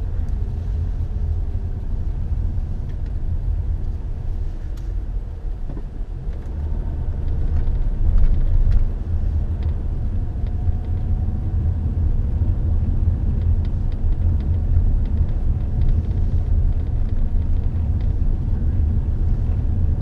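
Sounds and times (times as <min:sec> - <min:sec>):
car interior engine and tyre rumble: 0:00.0 - 0:20.0.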